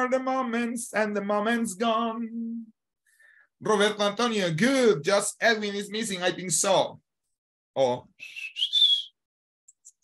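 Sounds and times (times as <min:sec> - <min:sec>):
breathy whistled notes: 0:08.2 - 0:09.3.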